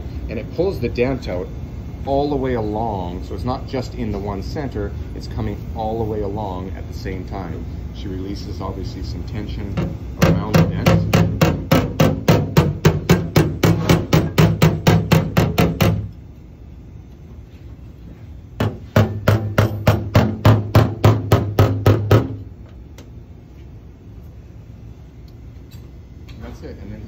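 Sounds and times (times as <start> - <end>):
hammer tapping on car body panel: 9.8 - 16.1, 18.6 - 22.5.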